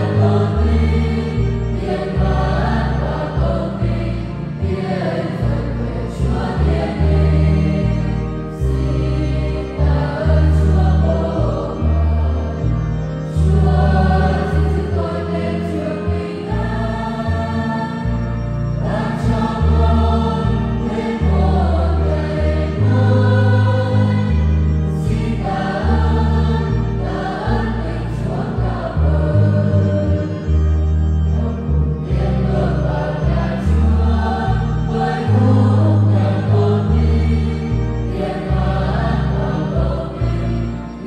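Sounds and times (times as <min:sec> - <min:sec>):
children's choir singing a hymn: 0:00.0 - 0:41.0
deep bass line accompaniment: 0:00.0 - 0:41.0.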